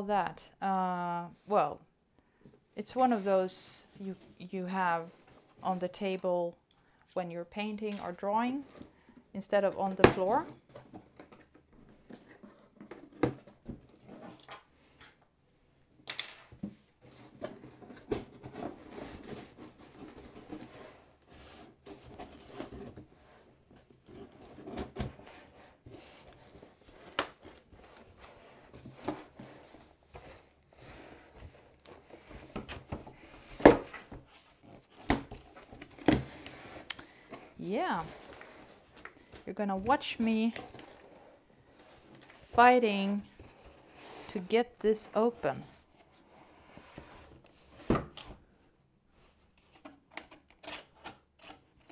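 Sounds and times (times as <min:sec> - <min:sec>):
cardboard scraping and rustling: 0:16.7 - 0:39.4.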